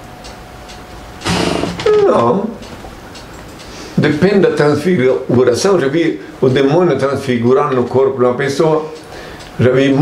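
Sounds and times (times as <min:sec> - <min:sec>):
faint steady hum: 0:00.0 - 0:10.0
person's voice: 0:01.8 - 0:02.6, 0:09.6 - 0:10.0.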